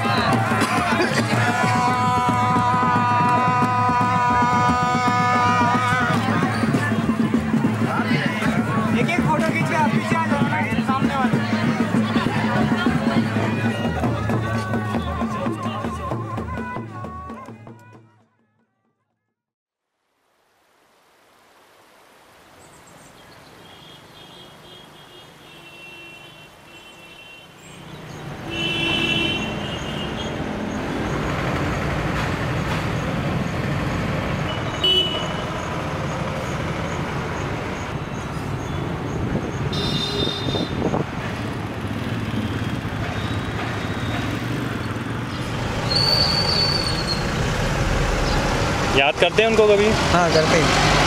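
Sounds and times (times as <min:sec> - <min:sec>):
scooters and motorbikes passing: 0:27.7 - 0:51.0.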